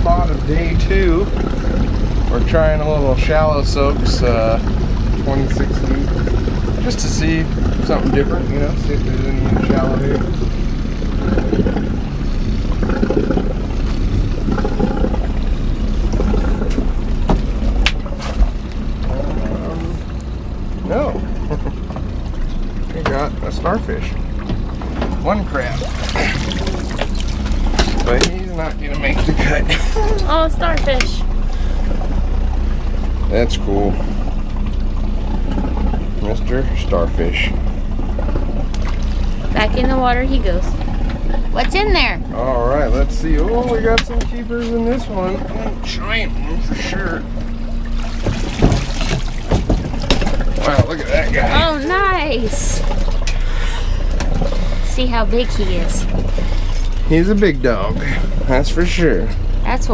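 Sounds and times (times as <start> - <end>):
water pouring and dripping: 0.0 - 29.4, 31.4 - 41.6, 42.7 - 59.5
steady low hum: 0.0 - 59.9.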